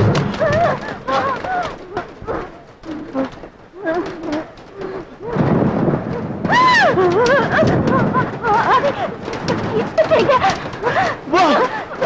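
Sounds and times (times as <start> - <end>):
heavy rain falling: 0.0 - 12.0
thunder rumbling: 0.0 - 12.0.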